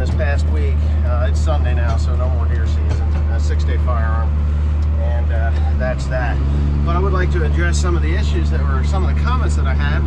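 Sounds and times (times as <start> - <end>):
tractor engine droning: 0.0 - 10.0.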